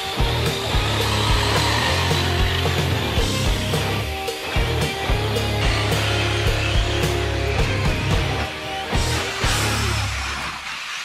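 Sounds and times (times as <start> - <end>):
background music with steady beat: 0.0 - 10.5.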